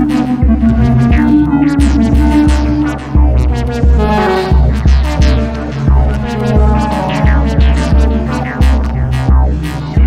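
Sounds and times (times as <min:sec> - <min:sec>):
deep bass pulses: 0:00.0 - 0:10.0.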